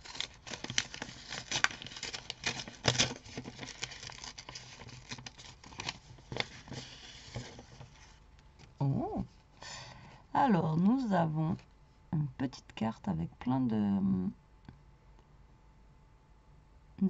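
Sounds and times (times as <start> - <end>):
paper envelope rustling and crinkling: 0.0 - 8.8.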